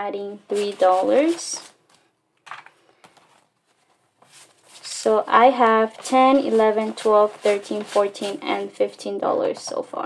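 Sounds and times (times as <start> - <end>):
paper money rustling: 0.3 - 8.9.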